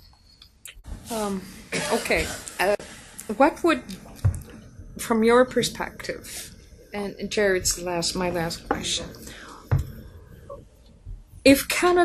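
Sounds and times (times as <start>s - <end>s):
soft breath noise: 9.2s - 11.4s.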